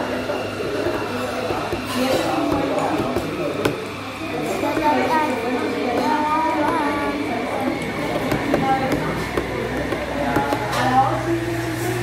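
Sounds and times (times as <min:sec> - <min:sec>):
indistinct voices talking: 0:00.0 - 0:11.6.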